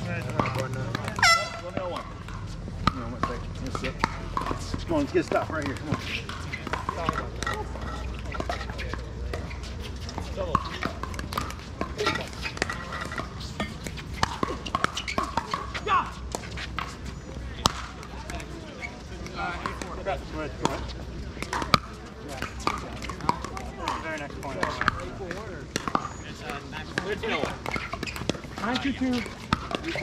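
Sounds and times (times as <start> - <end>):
distant voices: 0.0 - 30.0.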